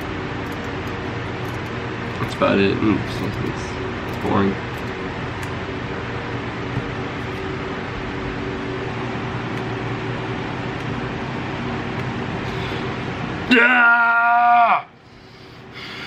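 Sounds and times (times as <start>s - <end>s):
electric fans running: 0.0s - 16.0s.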